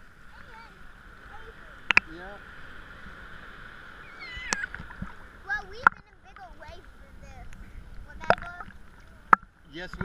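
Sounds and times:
water lapping and sloshing: 0.0s - 10.0s
short voice-like calls: 4.0s - 4.8s.

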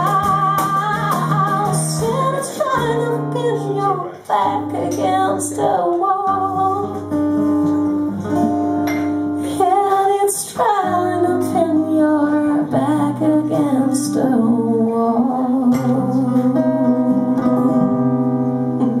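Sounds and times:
woman singing: 0.0s - 7.2s, 9.4s - 19.0s
acoustic guitar: 0.0s - 19.0s.

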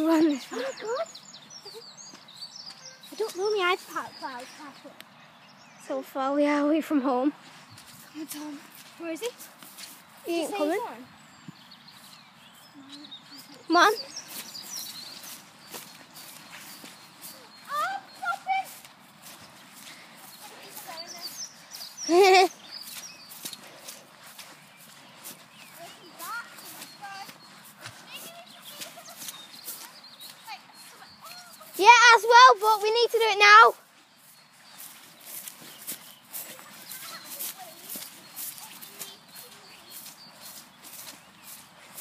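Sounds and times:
footsteps swishing through grass: 7.4s - 42.0s.

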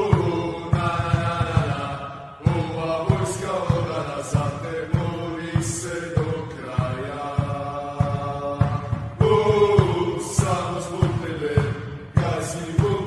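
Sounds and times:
chanting vocal over a beat: 0.0s - 13.0s.

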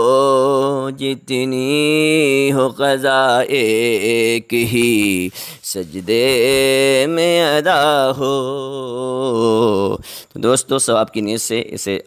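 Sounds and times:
man chanting devotional verse: 0.0s - 12.0s.

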